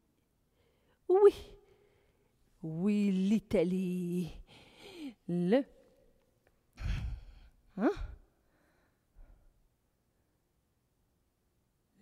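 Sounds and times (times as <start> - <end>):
woman exhaling: 6.8 - 8.7.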